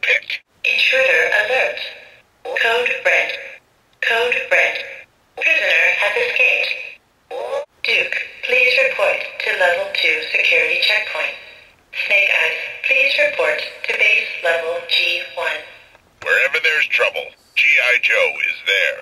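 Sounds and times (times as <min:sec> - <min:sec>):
toy speaker voice phrases: 0:00.0 - 0:01.9, 0:02.5 - 0:11.4, 0:12.0 - 0:19.0.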